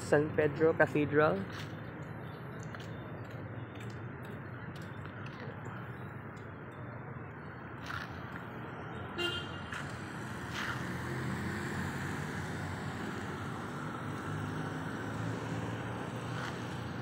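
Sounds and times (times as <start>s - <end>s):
vehicle engines running: 9.6s - 17.0s.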